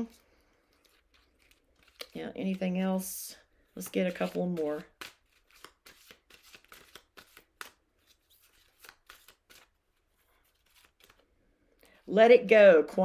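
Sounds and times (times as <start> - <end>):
cards being shuffled: 0.0 - 3.1, 3.7 - 11.3.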